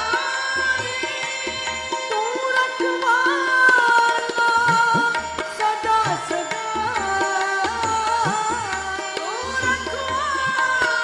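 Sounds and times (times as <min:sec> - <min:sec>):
tabla strokes: 0:00.0 - 0:11.0.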